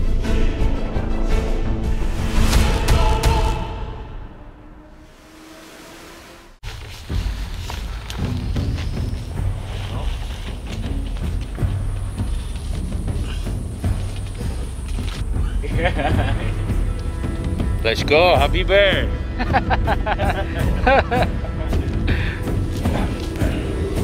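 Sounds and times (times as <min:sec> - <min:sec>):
music: 0:00.0 - 0:24.0
men's voices: 0:13.0 - 0:24.0.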